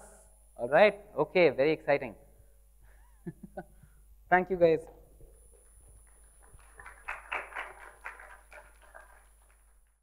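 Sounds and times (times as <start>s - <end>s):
small audience clapping: 5.5s - 10.0s.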